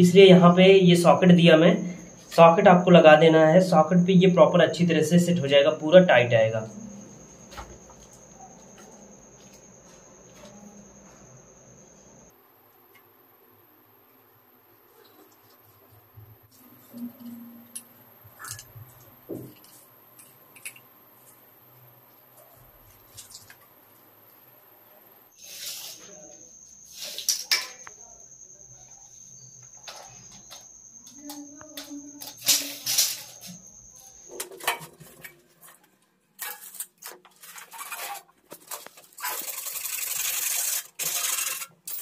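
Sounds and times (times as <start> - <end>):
high-pitched insect trill: 0.0 - 12.4, 25.3 - 34.9, 38.8 - 42.0.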